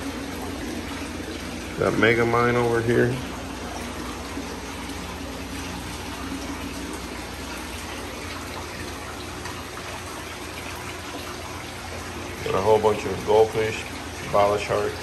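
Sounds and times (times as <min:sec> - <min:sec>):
aquarium water rushing and splashing: 0:00.0 - 0:15.0
low steady hum: 0:00.0 - 0:15.0.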